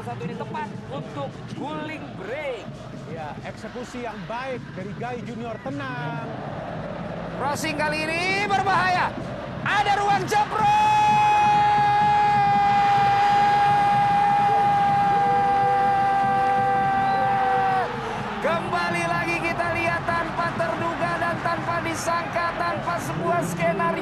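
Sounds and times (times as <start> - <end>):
commentator shouting goal: 7.4 - 24.0
excited fast speech: 7.4 - 24.0.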